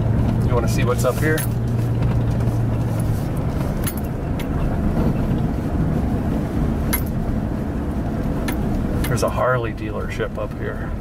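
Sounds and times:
engine and tyre rumble: 0.0 - 11.0.

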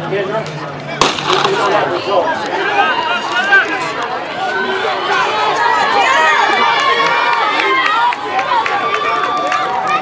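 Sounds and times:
crowd yelling and cheering: 1.0 - 10.0.

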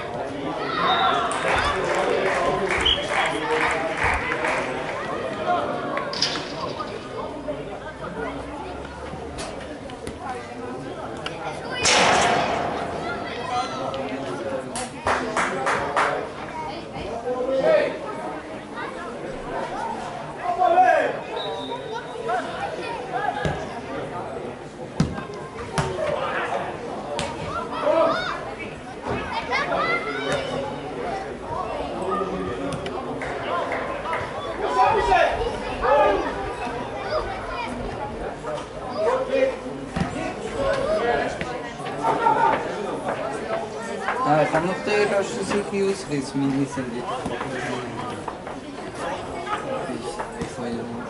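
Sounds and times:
spectators chattering: 0.0 - 51.0
sharp bang: 11.8 - 13.5.

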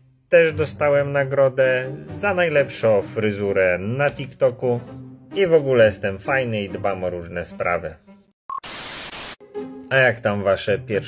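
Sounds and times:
static hiss burst: 8.6 - 9.4.

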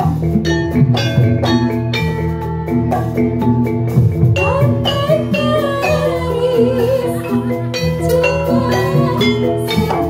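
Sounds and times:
drum: 0.0 - 10.0
metallophone tones: 0.0 - 10.0.

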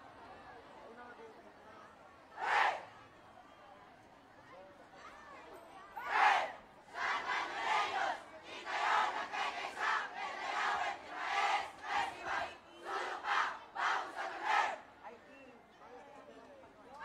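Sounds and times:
crowd chanting shouts: 2.3 - 3.0, 6.0 - 14.9.

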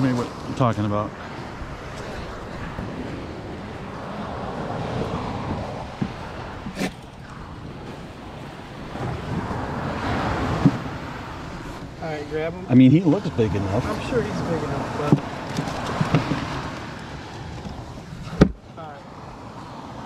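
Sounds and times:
waves washing on beach: 0.0 - 20.0
wind on microphone: 0.0 - 20.0.

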